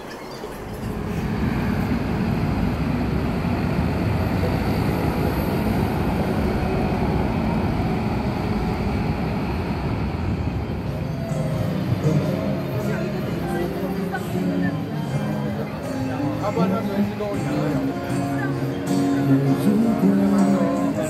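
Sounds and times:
city street traffic rumble: 0:00.0 - 0:21.0.

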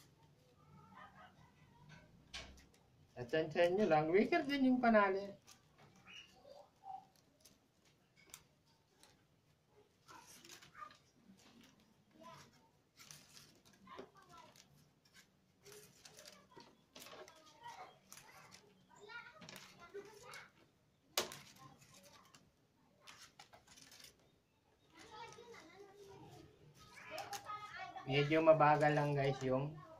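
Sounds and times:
wicker strand clicking and rustling: 0:00.0 - 0:29.9.

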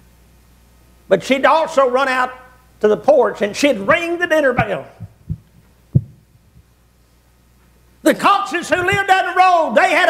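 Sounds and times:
footsteps on wooden platform: 0:04.6 - 0:06.7.

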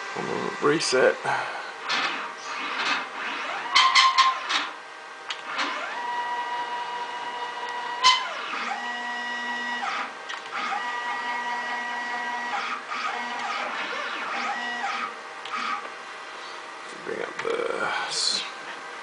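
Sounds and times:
stepper motors whining: 0:00.0 - 0:15.9.

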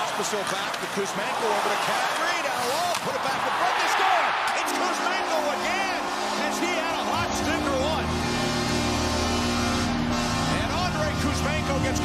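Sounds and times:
crowd cheering and clapping: 0:00.0 - 0:06.4
arena goal horn: 0:04.6 - 0:12.0.

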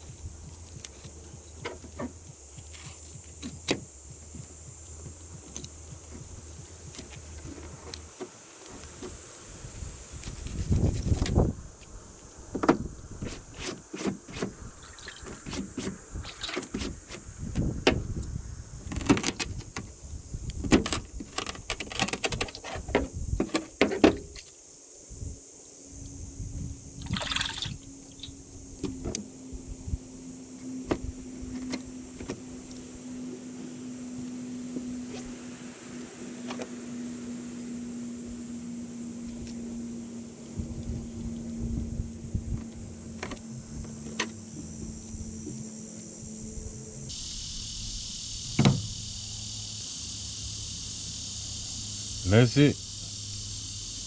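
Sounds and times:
low steady hum: 0:00.0 - 0:13.6, 0:25.1 - 0:49.7.

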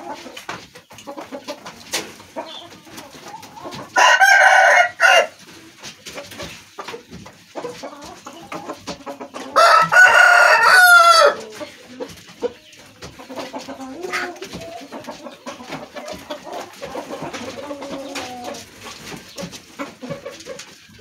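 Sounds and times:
rooster crowing: 0:04.0 - 0:05.4, 0:09.6 - 0:11.4.

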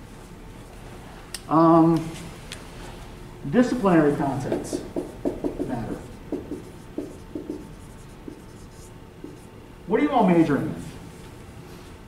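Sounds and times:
marker writing on whiteboard: 0:04.4 - 0:09.5.

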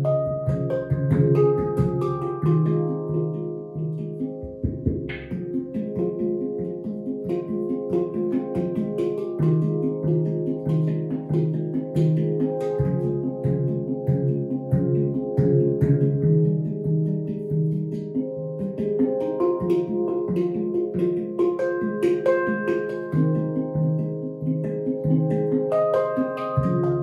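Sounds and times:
handpan played with fingers: 0:00.0 - 0:27.0.

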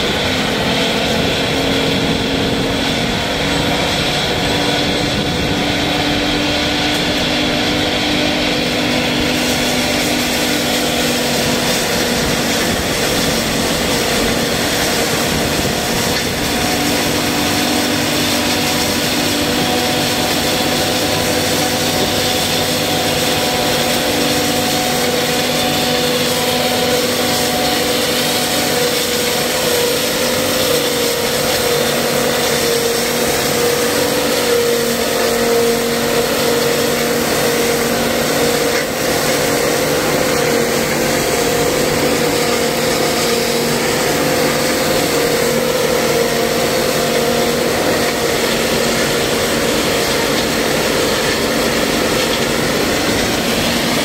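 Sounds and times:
forage mill chopping stalks: 0:00.0 - 0:54.0
tractor engine: 0:00.0 - 0:54.0.

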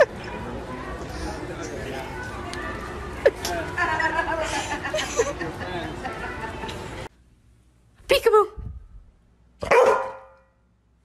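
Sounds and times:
dog barking: 0:09.6 - 0:10.4.

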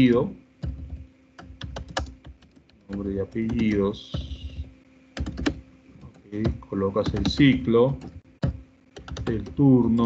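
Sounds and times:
typing on computer keyboard: 0:00.6 - 0:10.0.

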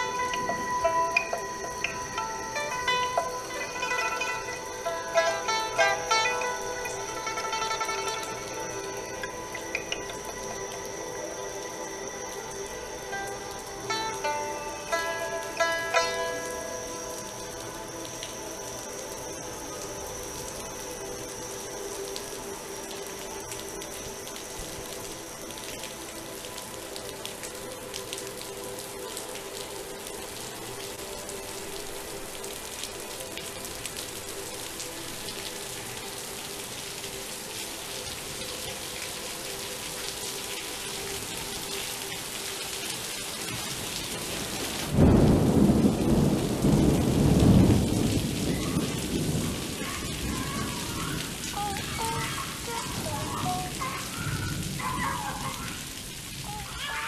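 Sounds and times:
droning chord: 0:00.0 - 0:44.2
rain: 0:00.0 - 0:57.0
thunder rumble: 0:43.5 - 0:56.7.

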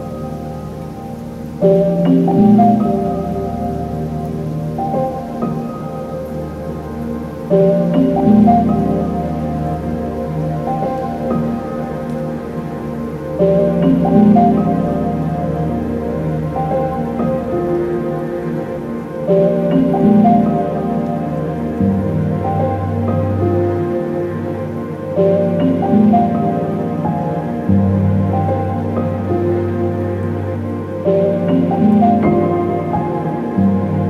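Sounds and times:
ambient synthesizer notes: 0:00.0 - 0:34.0.

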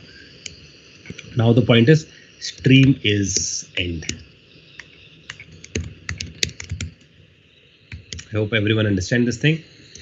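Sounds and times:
keyboard typing: 0:04.8 - 0:07.0, 0:07.9 - 0:08.3.

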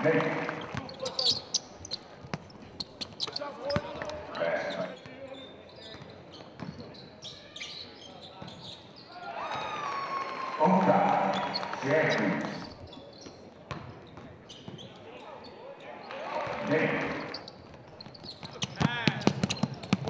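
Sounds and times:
voices calling out in a hall: 0:00.0 - 0:02.1, 0:02.9 - 0:20.0.

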